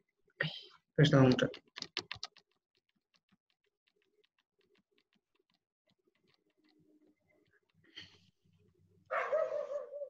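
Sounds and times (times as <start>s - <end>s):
narrator speaking: 1.0s - 1.6s
faint clicks: 1.3s - 8.8s.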